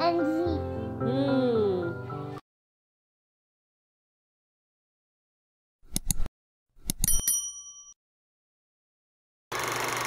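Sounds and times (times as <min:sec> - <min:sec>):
mouse clicks: 0:05.9 - 0:07.1
bright bell ding: 0:07.0 - 0:08.0.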